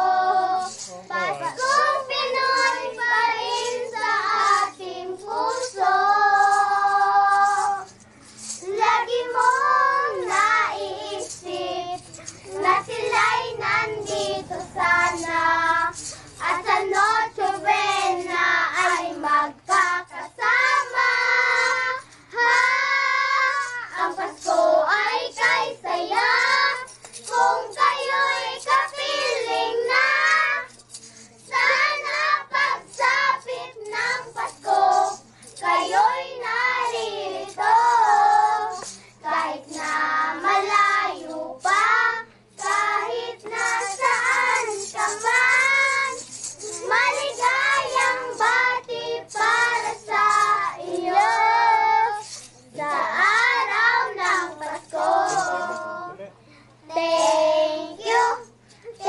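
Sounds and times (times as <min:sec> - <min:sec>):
children singing a carol: 0:00.0 - 0:59.0
children breathing: 0:56.4 - 0:56.8.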